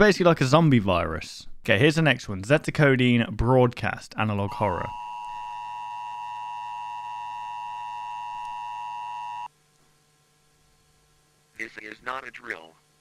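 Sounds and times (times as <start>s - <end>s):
emergency attention signal tone: 4.4s - 9.5s.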